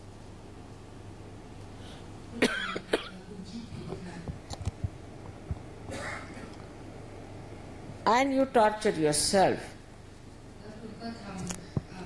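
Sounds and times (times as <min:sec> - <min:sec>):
woman coughing: 0:02.3 - 0:03.4, 0:05.9 - 0:06.5.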